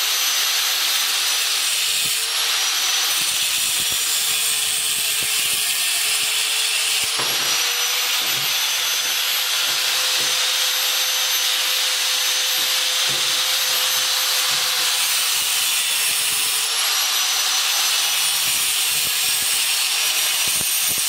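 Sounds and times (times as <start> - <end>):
angle grinder cutting metal: 0.0 - 21.0.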